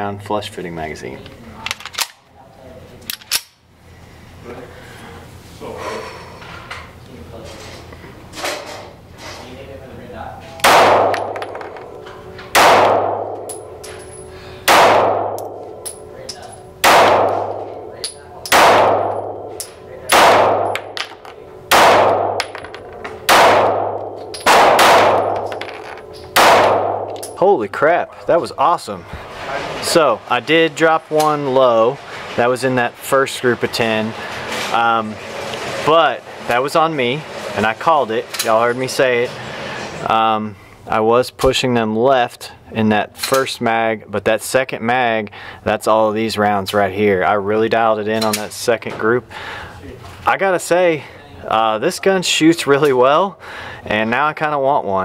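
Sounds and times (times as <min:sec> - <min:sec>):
pistol shots echoing indoors: 0:10.6 - 0:13.8, 0:14.6 - 0:16.1, 0:16.8 - 0:27.4.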